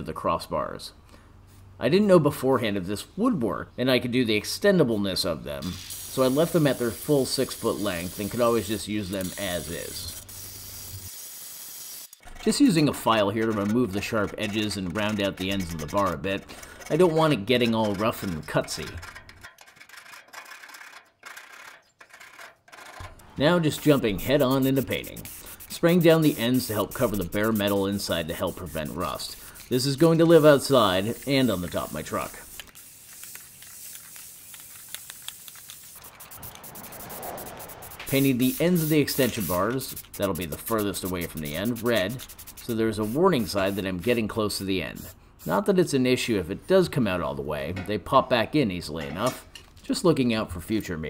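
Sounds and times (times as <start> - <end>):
spray paint can hissing: 5.6 - 12.2, 23.7 - 44.2.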